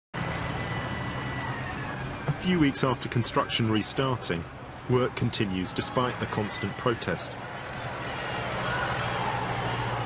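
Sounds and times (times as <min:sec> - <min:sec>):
street traffic noise: 0:00.2 - 0:10.0
low engine hum: 0:06.1 - 0:10.0.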